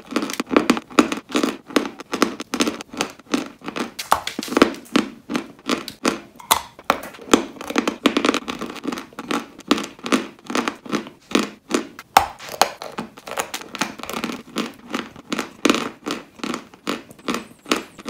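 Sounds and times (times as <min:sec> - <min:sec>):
dry crunchy chewing: 0:00.0 - 0:18.0
sharp crack: 0:04.0 - 0:04.9.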